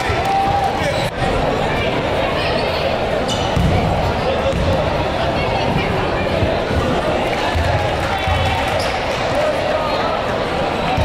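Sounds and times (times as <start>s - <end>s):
echoing chatter of voices: 0.0s - 11.0s.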